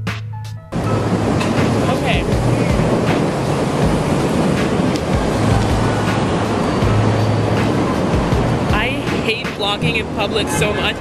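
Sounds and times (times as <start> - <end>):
city street roar: 0.0 - 11.0
wind on microphone: 0.7 - 11.0.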